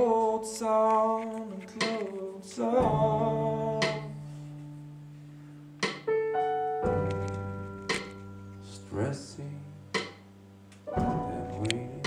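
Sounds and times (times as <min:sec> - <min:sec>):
keyboard chords and notes: 0:00.0 - 0:12.0.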